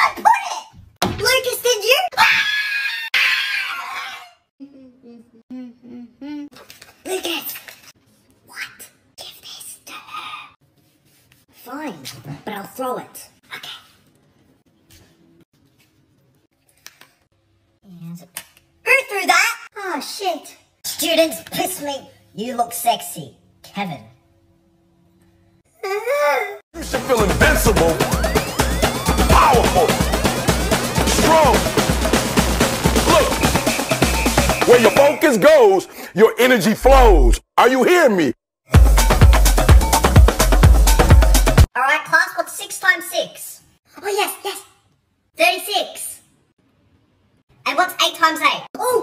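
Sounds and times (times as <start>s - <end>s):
loud shrill scream: 2.2s - 4.4s, 28.1s - 30.4s
electronic music with heavy bass: 26.8s - 35.2s, 36.8s - 37.4s, 38.7s - 41.7s
person wailing: 29.0s - 31.9s, 32.9s - 33.6s
person exclaiming: 29.1s - 30.1s, 31.0s - 31.8s, 33.0s - 33.5s, 36.7s - 37.4s.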